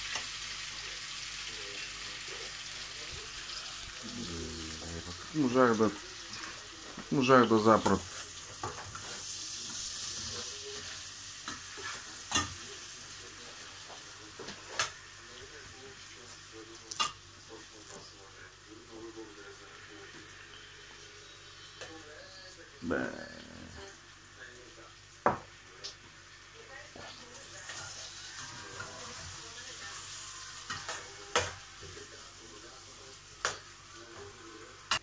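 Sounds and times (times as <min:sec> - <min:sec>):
food sizzling in a pot: 0:00.0 - 0:35.0.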